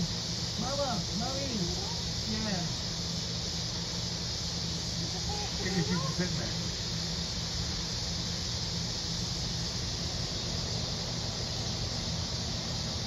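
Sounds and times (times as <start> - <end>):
constant hiss: 0.0 - 13.0
steady mechanical hum: 0.0 - 13.0.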